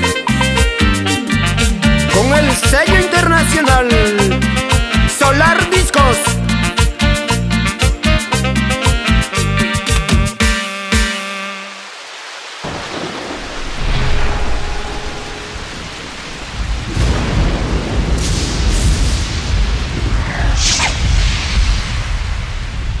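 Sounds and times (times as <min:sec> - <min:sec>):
rain hissing: 0:10.5 - 0:23.0
rolling thunder: 0:12.6 - 0:23.0
sharp thunder crack: 0:12.6 - 0:23.0.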